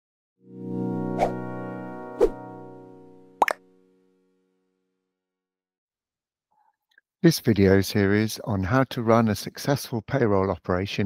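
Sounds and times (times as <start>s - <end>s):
held synthesizer chord: 0.4s - 5.0s.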